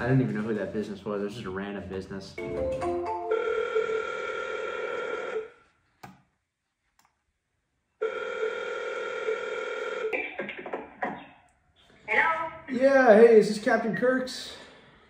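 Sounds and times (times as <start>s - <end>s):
telephone ringback tone: 2.4s - 5.5s, 8.0s - 10.1s.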